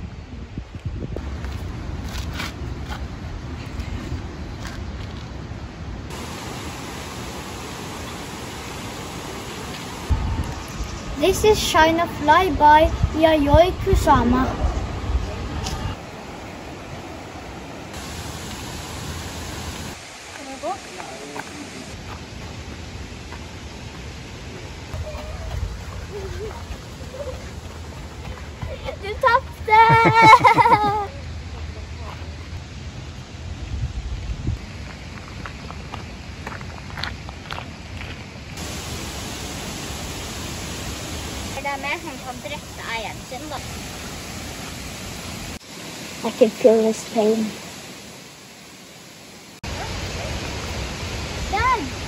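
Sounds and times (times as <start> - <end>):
steady rushing noise: 0.0 - 52.0
person speaking: 28.8 - 31.1.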